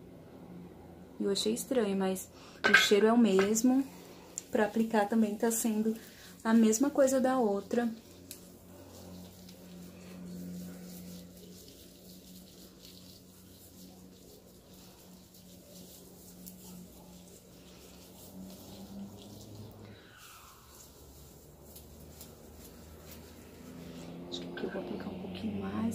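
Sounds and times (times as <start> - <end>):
steady low hum: 0.0 - 25.9
wet squishing of hair: 3.3 - 24.3.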